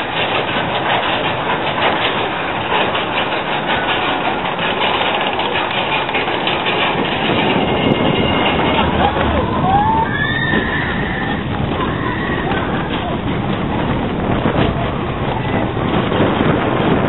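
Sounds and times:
roller coaster train rushing: 0.0 - 17.0
high squeal: 7.6 - 12.9.

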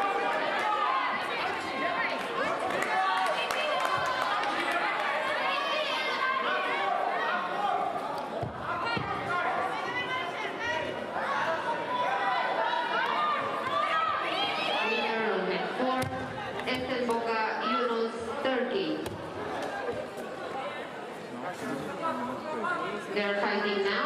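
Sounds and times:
crowd chatter in a hall: 0.0 - 24.0.

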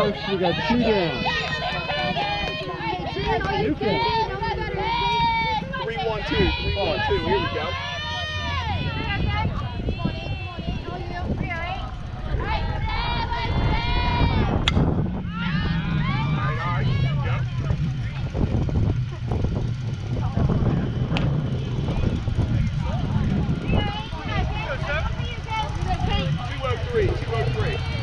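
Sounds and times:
people calling out: 0.0 - 28.0
low rumble: 0.1 - 28.0
sharp crack: 14.6 - 14.9.

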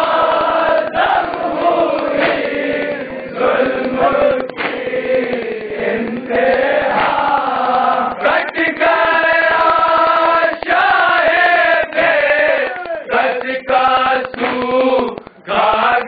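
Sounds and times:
hands striking chests: 0.0 - 16.0
men chanting a lament in unison: 0.0 - 16.0.

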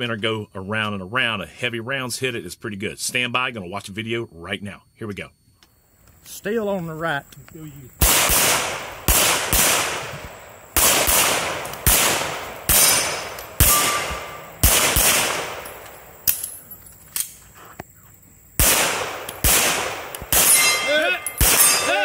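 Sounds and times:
pistol shots echoing: 8.0 - 16.3, 18.6 - 22.0.

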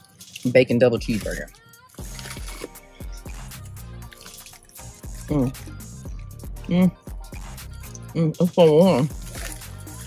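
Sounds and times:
soft background music: 0.0 - 10.0
wet chewing and lip-smacking: 1.1 - 5.6, 9.1 - 10.0.

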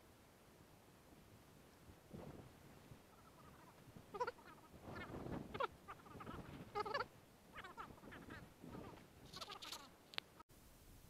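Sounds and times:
duck quacking: 3.1 - 9.9.

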